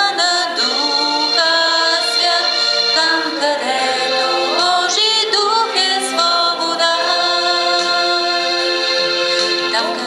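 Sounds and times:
woman singing worship song: 0.0 - 8.8, 9.4 - 10.0.

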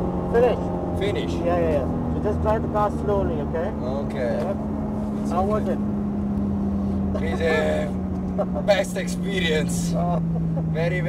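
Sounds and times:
car engine running at low revs: 0.0 - 11.0
road and tyre rumble: 0.0 - 11.0.

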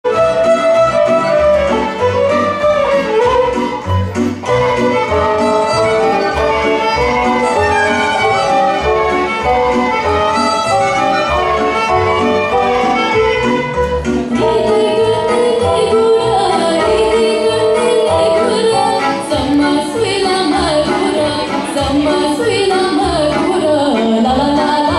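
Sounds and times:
double bass: 0.1 - 24.9
violins playing lively melody: 0.1 - 24.9.

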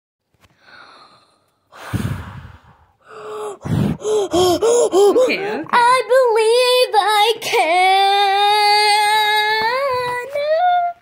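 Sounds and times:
person breathing: 0.4 - 5.7.

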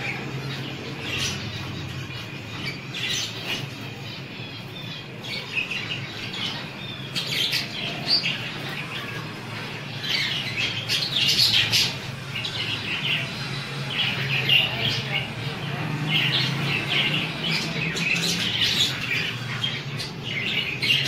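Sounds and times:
budgerigars chirping: 0.0 - 21.0.

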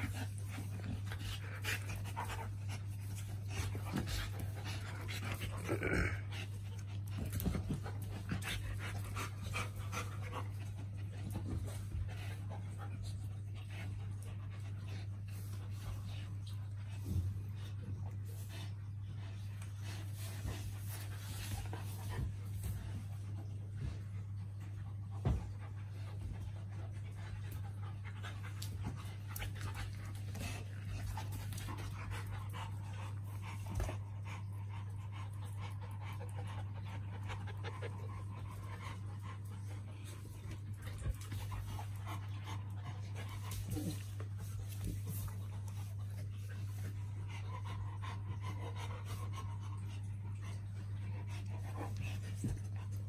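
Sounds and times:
dogs panting: 0.0 - 53.0
faint rustling and movement: 0.0 - 53.0.

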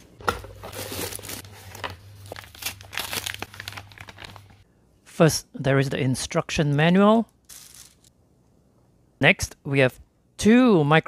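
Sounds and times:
plastic packaging crinkling: 0.7 - 4.6, 7.4 - 8.1.

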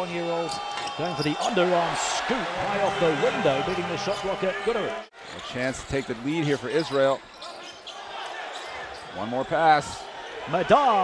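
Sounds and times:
arena crowd noise: 0.0 - 11.0
commentator speaking: 1.1 - 5.1.

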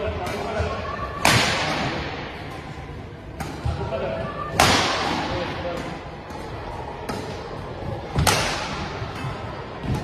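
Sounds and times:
racket hitting shuttlecock: 8.1 - 10.0.

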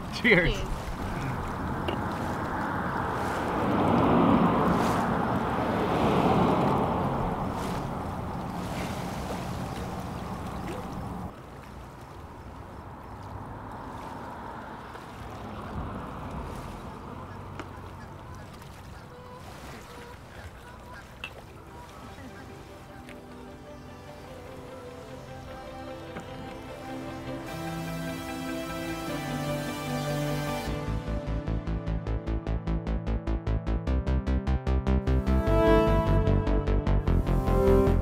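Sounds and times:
water at shoreline: 0.0 - 31.5
wind rushing: 0.6 - 9.7.

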